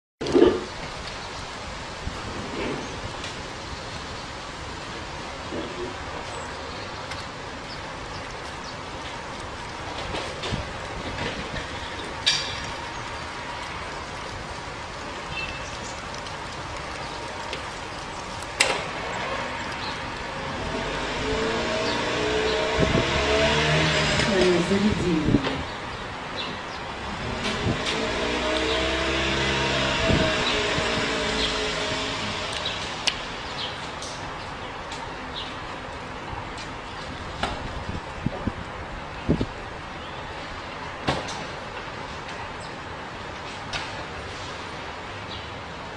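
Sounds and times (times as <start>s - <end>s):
vehicle engine humming: 0.3s - 45.9s.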